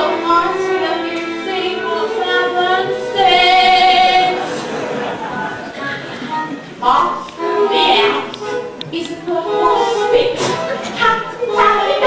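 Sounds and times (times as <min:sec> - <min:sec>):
woman singing: 0:00.0 - 0:04.4, 0:06.8 - 0:12.0.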